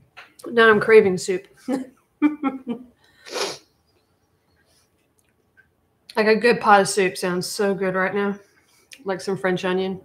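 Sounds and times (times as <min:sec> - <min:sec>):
woman's breathy burst of breath: 0:03.2 - 0:03.7.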